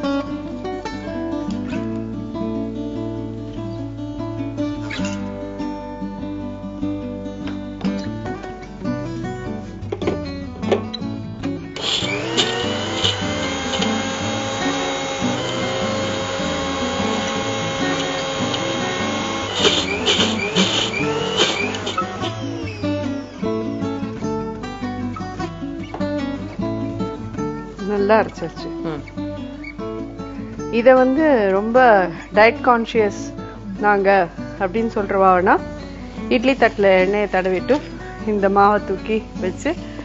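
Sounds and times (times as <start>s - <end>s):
acoustic guitar music: 0.0s - 40.0s
mixer grinder grinding: 11.8s - 24.2s.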